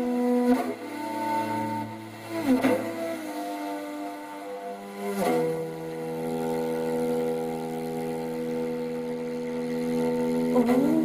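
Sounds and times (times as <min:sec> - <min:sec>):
horsehead fiddle bowed notes: 0:00.0 - 0:11.0.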